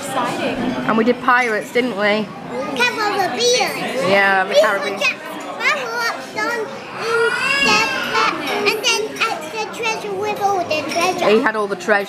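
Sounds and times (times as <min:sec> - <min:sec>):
girl talking: 0:02.6 - 0:11.4.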